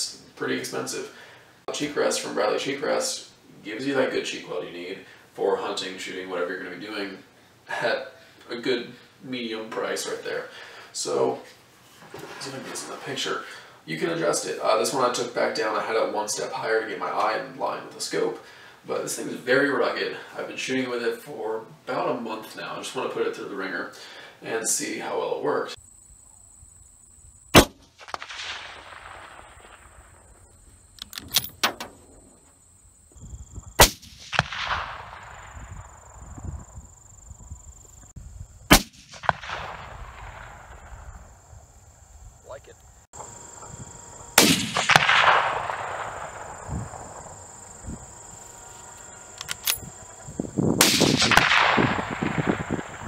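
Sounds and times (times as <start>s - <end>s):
rifle shots echoing: 27.5s - 30.4s, 33.8s - 36.1s, 38.7s - 41.3s, 44.0s - 50.2s, 50.8s - 53.0s
rifle bolt clicks: 31.0s - 32.0s, 49.4s - 49.8s.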